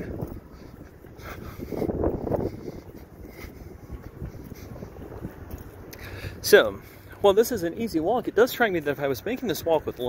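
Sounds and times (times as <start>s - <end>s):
street traffic: 0.0s - 10.0s
wind buffeting microphone: 0.0s - 10.0s.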